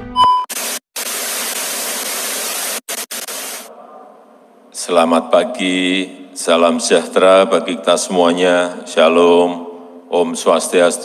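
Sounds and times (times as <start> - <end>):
short loud beep: 0.1 - 0.5
static hiss: 0.5 - 3.7.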